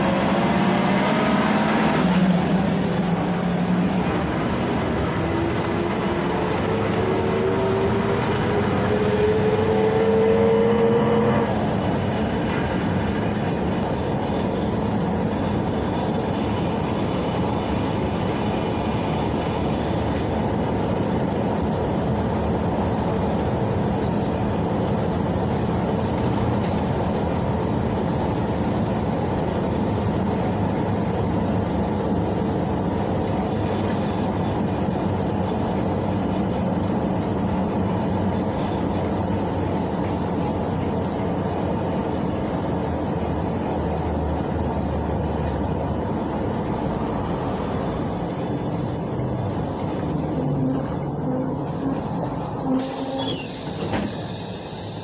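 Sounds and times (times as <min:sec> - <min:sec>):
bus engine running: 0:00.0 - 0:55.0.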